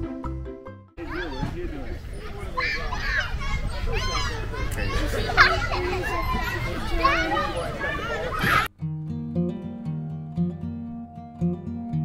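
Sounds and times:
children calling out at play: 1.0s - 8.7s.

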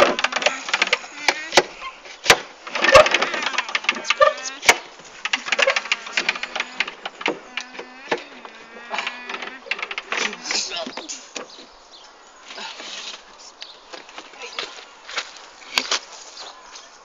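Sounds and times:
young people calling and chattering: 0.2s - 17.0s.

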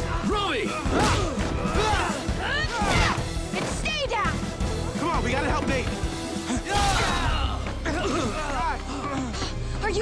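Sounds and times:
driving action music: 0.0s - 10.0s
punch and kick impacts: 0.8s - 2.2s.

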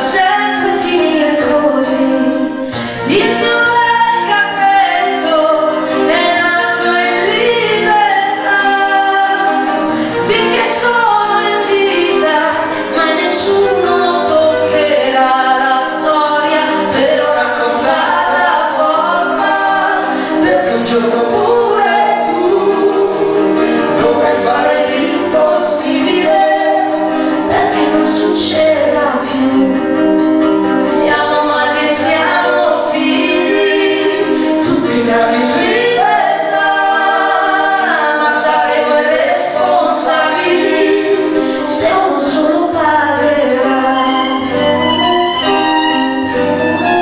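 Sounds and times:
acoustic guitar: 0.0s - 47.0s
keyboard: 0.0s - 47.0s
man and woman singing duet: 0.0s - 47.0s
violin: 0.0s - 47.0s.

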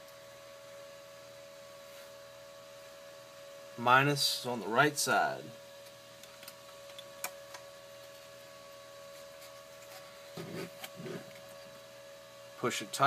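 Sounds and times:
steady hum: 0.0s - 13.0s.

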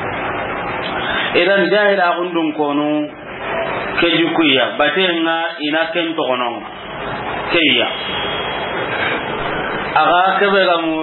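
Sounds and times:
steady rushing noise: 0.0s - 2.5s
speech: 1.3s - 3.1s, 4.0s - 6.7s, 7.5s - 8.0s, 10.0s - 11.0s.

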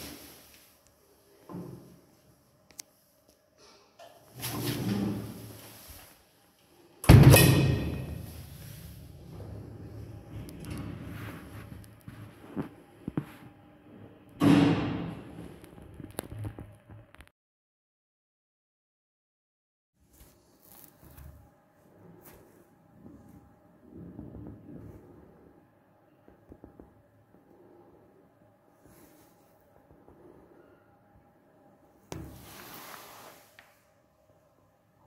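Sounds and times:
steel door swinging shut: 7.0s - 8.3s
rumbling slide of door: 7.2s - 11.8s.

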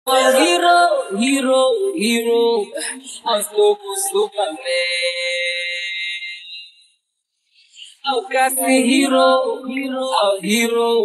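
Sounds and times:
shrill synthesized tone: 0.1s - 1.1s.

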